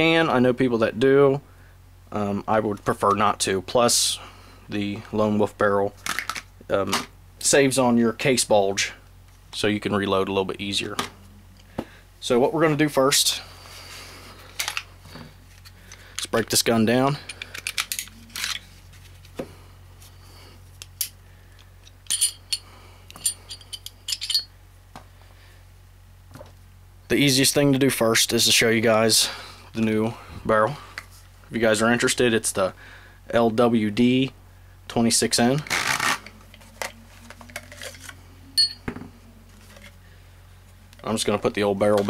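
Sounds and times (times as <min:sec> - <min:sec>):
pistol parts clicking and clinking: 0:17.3 - 0:18.6, 0:21.8 - 0:24.5.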